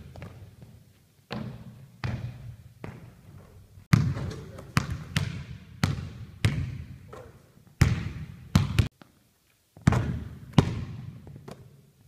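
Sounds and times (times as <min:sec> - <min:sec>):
basketball bouncing on hardwood floor: 0:00.0 - 0:03.2, 0:03.9 - 0:08.9, 0:09.8 - 0:11.7.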